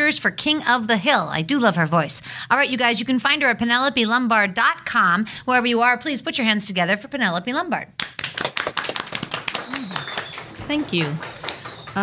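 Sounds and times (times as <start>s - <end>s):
people clapping: 8.0s - 12.0s.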